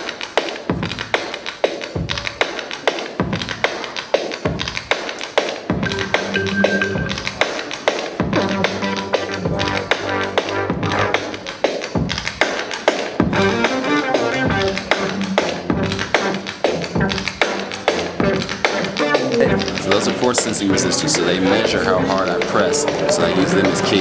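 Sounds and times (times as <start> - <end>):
synthesizer beats: 5.7 - 24.0
electronic bass line: 5.8 - 7.4, 8.3 - 11.4, 13.3 - 20.0.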